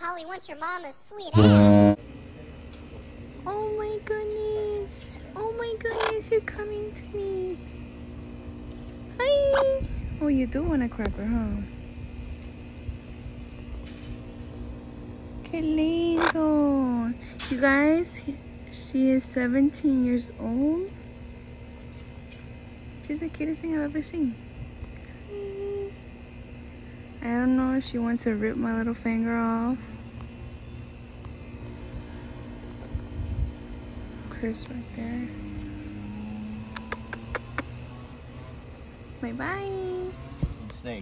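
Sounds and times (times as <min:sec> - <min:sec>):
faint steady hum: 0:00.0 - 0:41.0
low background rumble: 0:03.0 - 0:40.9.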